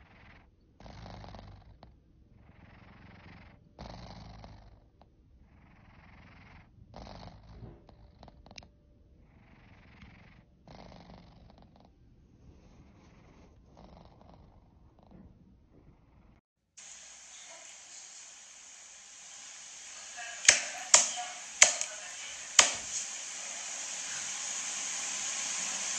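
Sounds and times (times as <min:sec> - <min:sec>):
cat breathing noisily: 0:00.0 - 0:04.8, 0:05.4 - 0:08.5, 0:09.2 - 0:11.7, 0:12.3 - 0:15.2.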